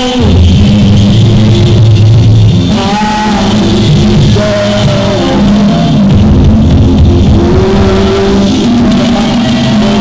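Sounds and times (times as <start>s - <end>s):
live praise band playing: 0.0s - 10.0s.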